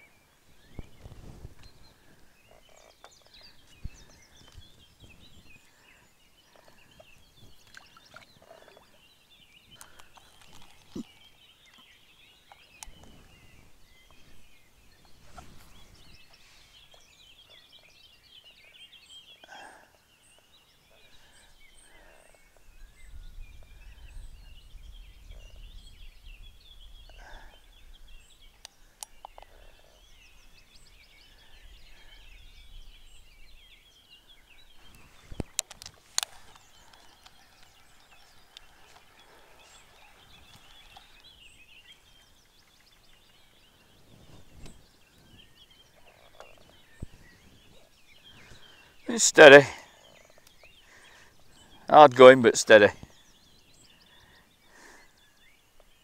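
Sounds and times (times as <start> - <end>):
songbirds chirping and warbling: 0.0 - 56.0.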